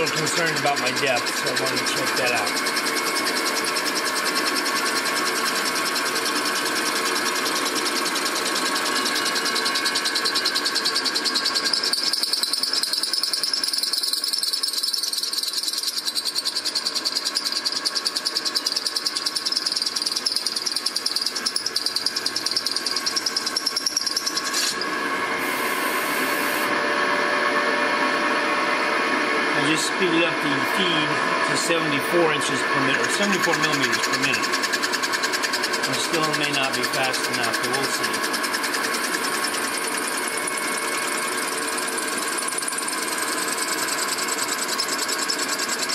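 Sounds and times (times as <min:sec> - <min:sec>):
milling machine drilling metal: 0:00.0 - 0:45.9.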